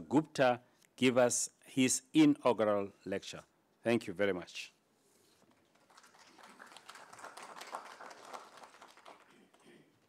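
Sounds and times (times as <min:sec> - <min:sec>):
light applause: 0:05.7 - 0:10.0.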